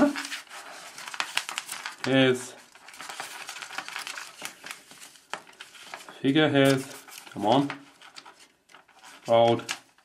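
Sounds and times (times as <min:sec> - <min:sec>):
paper rustling and crinkling: 0:00.0 - 0:10.0.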